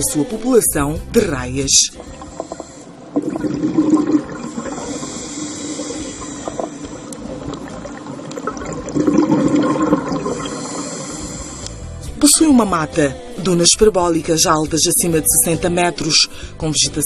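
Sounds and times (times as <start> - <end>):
rushing underwater hiss: 1.9 - 11.9.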